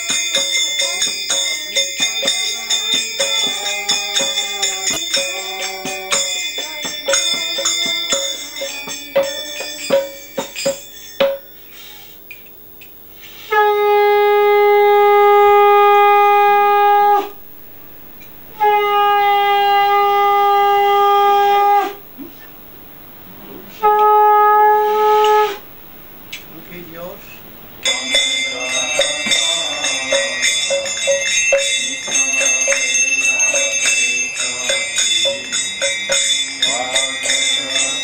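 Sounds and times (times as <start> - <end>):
drum strokes: 0.0 - 12.4, 13.0 - 28.3
hand bell ringing: 0.0 - 12.4, 27.8 - 38.0
conch shell blast: 13.4 - 32.0.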